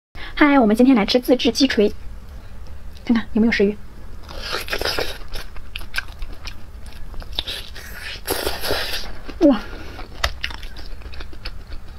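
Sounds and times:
chewing crackles: 4.2 - 11.9.

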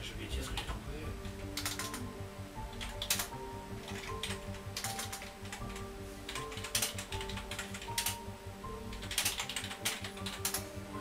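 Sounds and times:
background music: 0.0 - 11.0
keyboard typing clicks: 0.5 - 2.1, 2.7 - 10.7.

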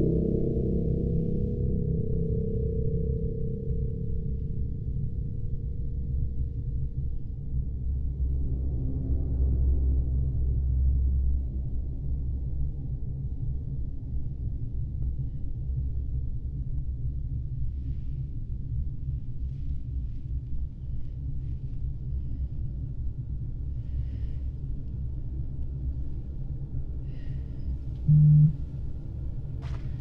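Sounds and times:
low rumbling drone: 28.0 - 29.0.

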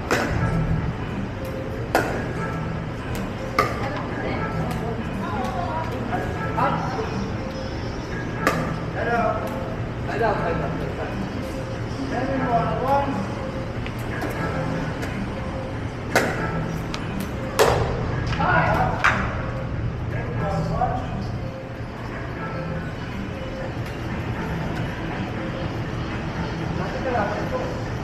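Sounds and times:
indoor music: 0.0 - 28.0.

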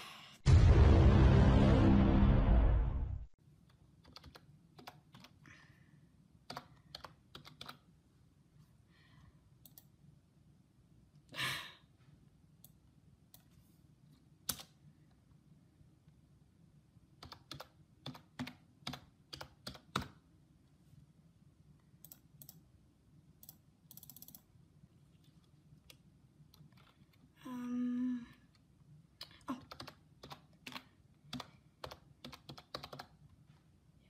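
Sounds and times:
typing on computer keyboard: 4.0 - 5.4, 6.5 - 7.9, 17.2 - 20.2, 23.4 - 24.5, 29.2 - 33.2.

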